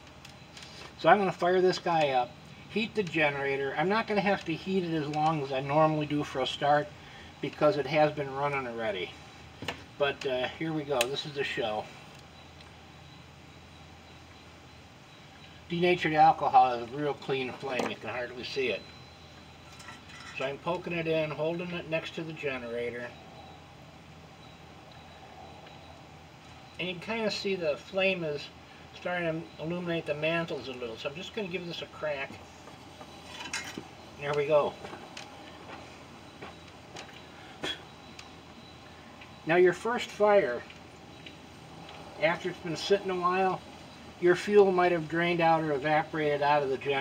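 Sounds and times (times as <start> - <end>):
faint outdoor background hiss: 0.0 - 47.0.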